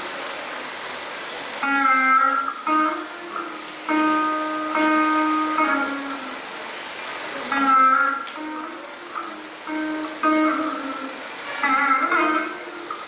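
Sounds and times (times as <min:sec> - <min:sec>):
plucked veena notes: 0:01.6 - 0:13.0.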